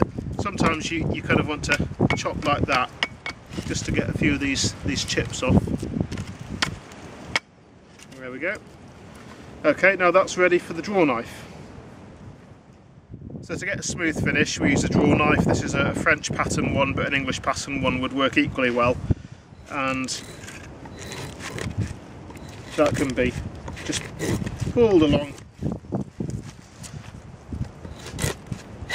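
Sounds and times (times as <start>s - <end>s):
draw knife scraping wood: 20.0s - 25.5s, 27.8s - 28.9s.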